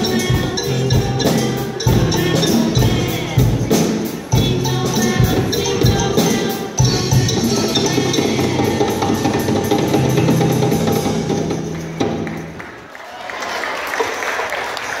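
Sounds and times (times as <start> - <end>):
voices singing: 0.0 - 9.7
djembe hand drums: 0.0 - 12.5
drum kit: 0.0 - 12.7.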